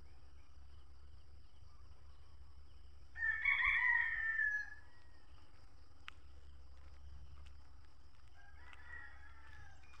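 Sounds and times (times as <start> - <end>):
rooster crowing: 3.2 - 5.1, 8.4 - 9.9.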